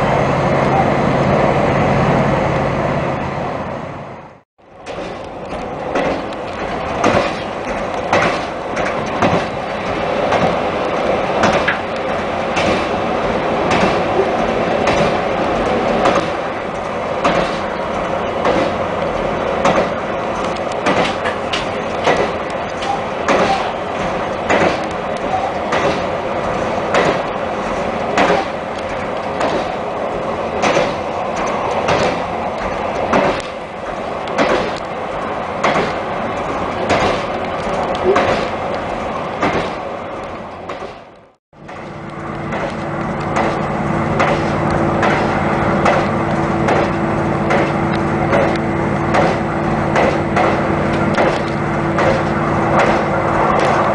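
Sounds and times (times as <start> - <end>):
train running rumble: 0.0 - 53.9
train wheel clicks over rail joints: 4.8 - 53.9.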